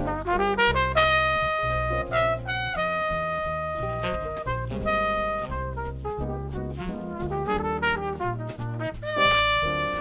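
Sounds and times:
jazz trumpet solo: 0:00.0 - 0:10.0
low bass notes: 0:00.0 - 0:10.0.

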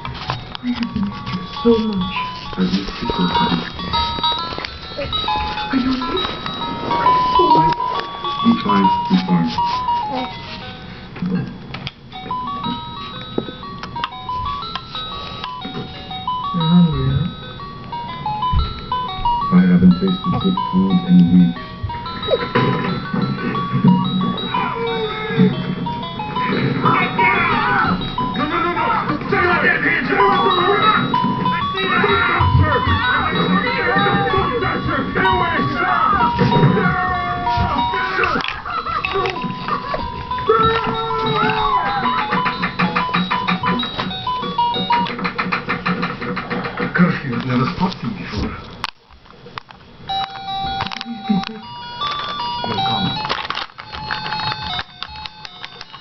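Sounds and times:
electronic chime melody: 0:00.0 - 0:45.2, 0:50.1 - 0:56.0
electronic beeping tune: 0:00.2 - 0:10.3, 0:30.1 - 0:45.2
voices talking: 0:00.2 - 0:11.6, 0:18.2 - 0:48.6, 0:50.8 - 0:53.3.

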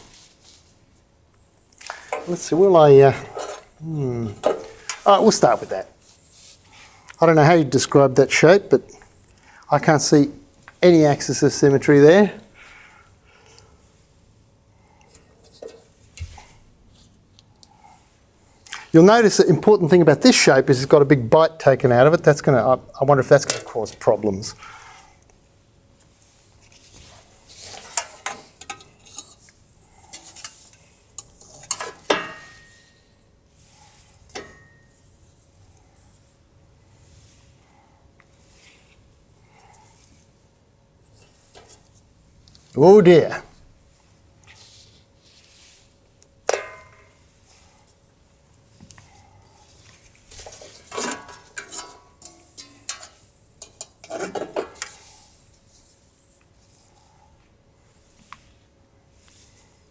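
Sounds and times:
handling clinks and scrapes: 0:01.8 - 0:06.6, 0:26.0 - 0:35.6, 0:49.6 - 0:57.0
sharp metal clank with ring: 0:32.1 - 0:33.0, 0:34.4 - 0:35.0.

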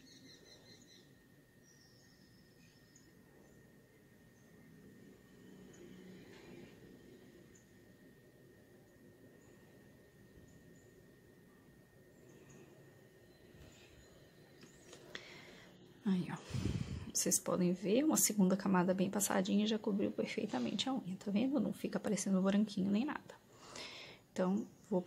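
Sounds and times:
faint steady high tone: 0:00.0 - 0:16.4.

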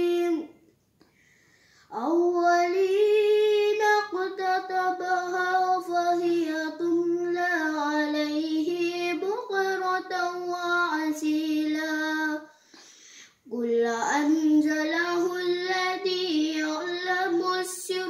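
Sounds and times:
boy chanting recitation: 0:00.0 - 0:00.6, 0:01.9 - 0:12.6, 0:13.4 - 0:18.0.

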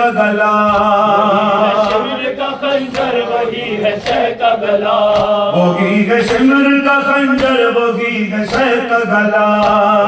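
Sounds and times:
man chanting a lament: 0:00.0 - 0:10.0.

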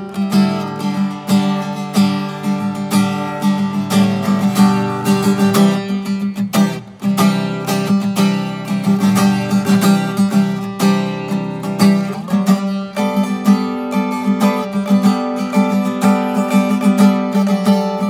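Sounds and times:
acoustic guitar playing: 0:00.0 - 0:18.0.

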